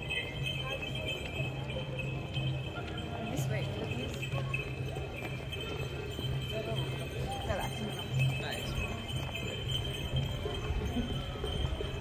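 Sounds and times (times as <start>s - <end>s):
clopping on paving: 0.0s - 12.0s
people chatting: 0.0s - 12.0s.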